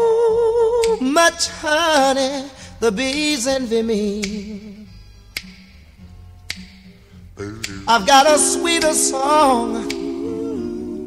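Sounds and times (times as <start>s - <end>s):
finger snaps: 0.8s - 1.1s, 3.1s - 8.1s, 8.8s - 9.1s, 9.8s - 10.2s.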